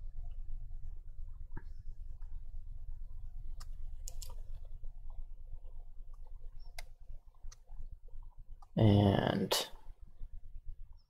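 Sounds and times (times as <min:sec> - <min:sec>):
low steady hum: 0:00.0 - 0:11.0
mouse and keyboard clicks: 0:03.6 - 0:04.7.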